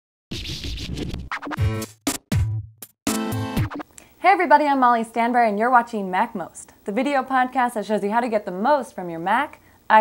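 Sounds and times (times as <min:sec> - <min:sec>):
record scratch: 0:00.3 - 0:02.2, 0:03.1 - 0:03.9
electronic intro music: 0:00.3 - 0:03.8.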